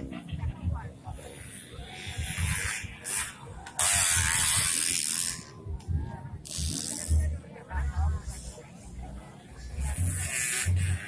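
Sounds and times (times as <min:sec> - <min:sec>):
dirt bike engines revving: 0:00.0 - 0:07.4.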